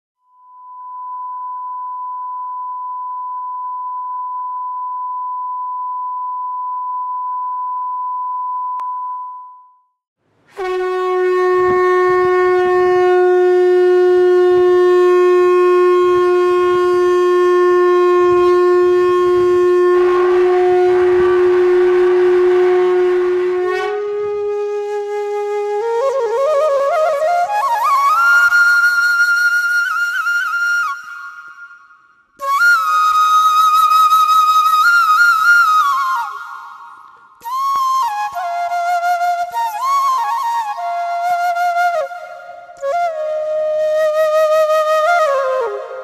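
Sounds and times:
plain high tone: 0.2s - 10.0s
conch shell blown: 10.5s - 29.5s.

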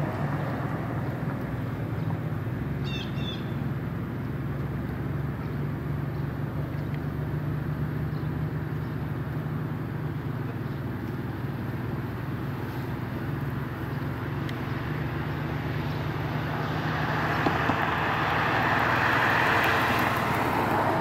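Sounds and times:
car driving past: 0.0s - 2.4s, 12.7s - 21.0s
low outdoor rumble: 0.0s - 21.0s.

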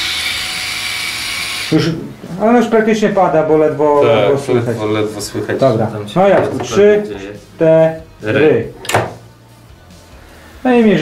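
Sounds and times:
cordless screwdriver motor whirring: 0.0s - 1.8s.

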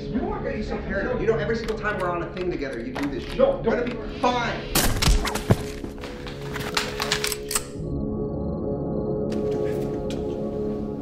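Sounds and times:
low music drone: 7.0s - 11.0s.

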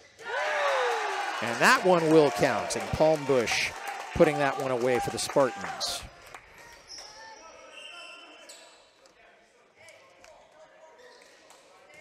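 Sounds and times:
shoe squeaks on hardwood court: 6.6s - 9.0s, 11.0s - 11.4s.

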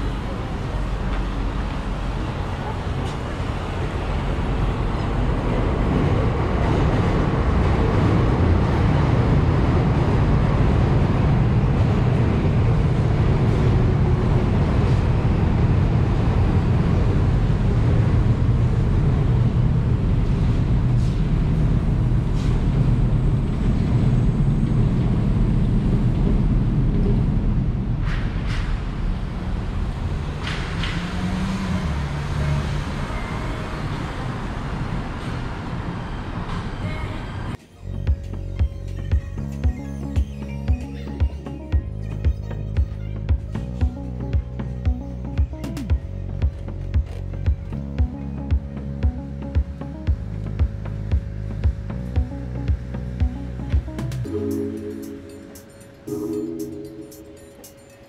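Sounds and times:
low rumble of road traffic: 0.0s - 58.0s.

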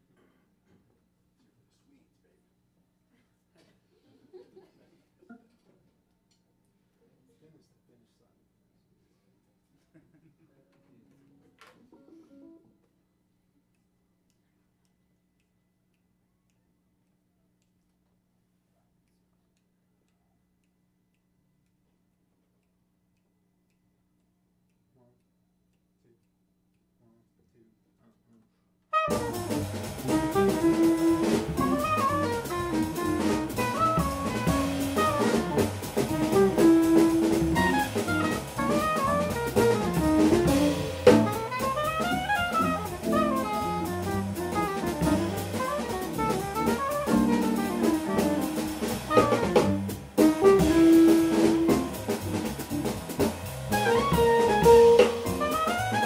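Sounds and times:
soprano saxophone: 28.9s - 52.3s, 53.7s - 56.0s
drum kit cymbals: 28.9s - 56.0s
piano: 29.0s - 56.0s.

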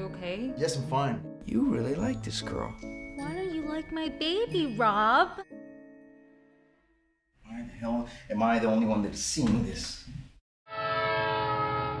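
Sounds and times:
loud horn-like held chord: 10.7s - 12.0s.

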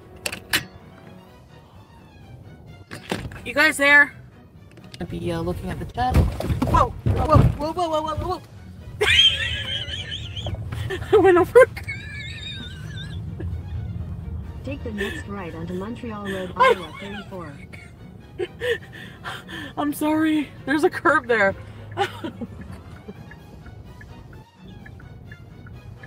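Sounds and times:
faint background music: 0.0s - 26.0s
low car cabin hum: 4.9s - 26.0s
woman's wheezing laugh: 9.0s - 11.1s, 11.7s - 13.2s.

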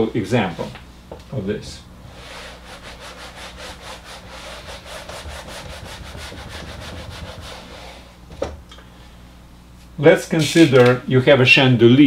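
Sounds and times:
eraser scrubbing whiteboard: 2.1s - 8.2s.

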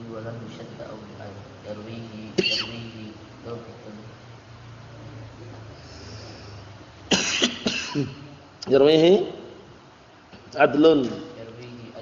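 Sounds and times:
faint low hum: 0.0s - 12.0s
man coughing: 2.4s - 2.9s, 7.1s - 8.2s.

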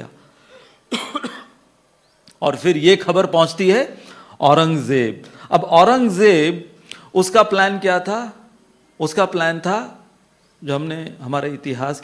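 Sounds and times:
man coughing: 0.5s - 1.6s.

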